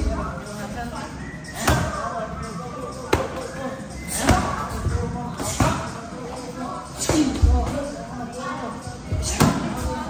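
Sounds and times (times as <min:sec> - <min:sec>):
voices talking in background: 0:00.0 - 0:10.0.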